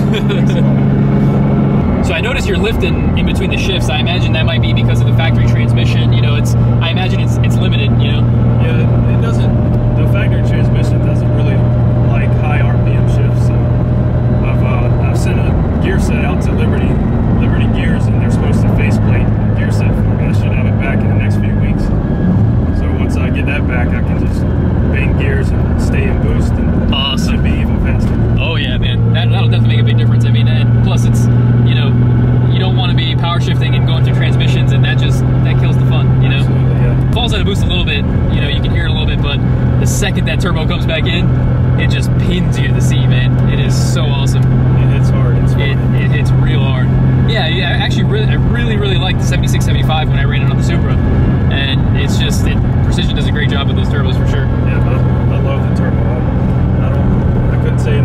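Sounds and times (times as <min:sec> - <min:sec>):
car engine drone inside cabin: 0:00.0 - 0:58.0.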